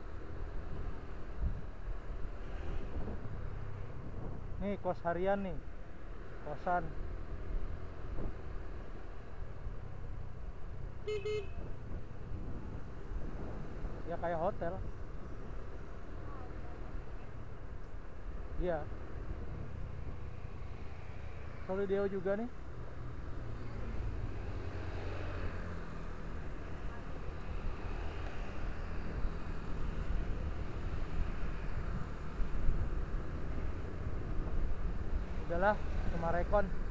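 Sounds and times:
road noise: 0.0 - 36.9
vehicle rumbling along street: 0.0 - 36.9
motorcycles riding: 0.1 - 36.9
short horn toot: 11.0 - 11.7.

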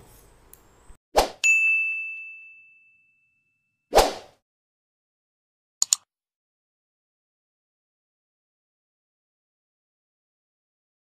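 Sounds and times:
bright bell-like ding: 1.4 - 3.8
quick whoosh: 3.9 - 4.4.

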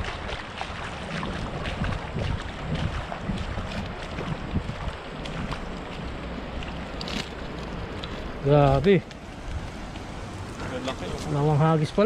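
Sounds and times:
shallow river water rushing: 0.0 - 12.0
wind buffeting microphone: 0.0 - 12.0.

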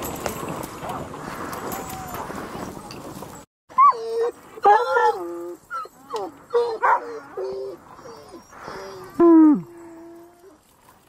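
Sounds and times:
dog whining and yelping: 3.7 - 10.6
dogs barking: 6.1 - 9.1.

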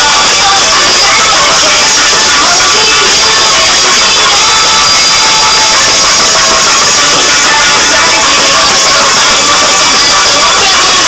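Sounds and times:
distorted hardcore dance music: 0.0 - 11.0.

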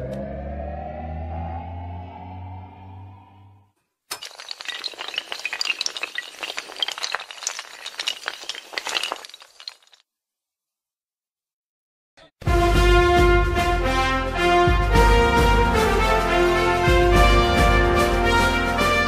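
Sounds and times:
low hum: 0.0 - 3.6
rising synthesized tone: 0.0 - 3.6.

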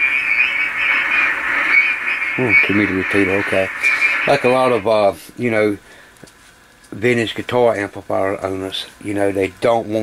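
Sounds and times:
faint wavering whistles: 0.0 - 4.9
radio receiver static hiss: 0.0 - 5.8.

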